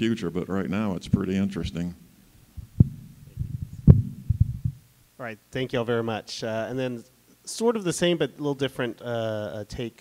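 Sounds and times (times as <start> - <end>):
microphone handling thumps: 1.0 - 5.0.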